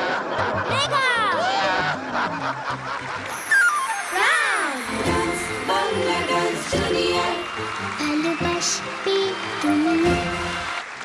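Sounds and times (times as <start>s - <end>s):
bright television music jingle: 2.6s - 11.0s.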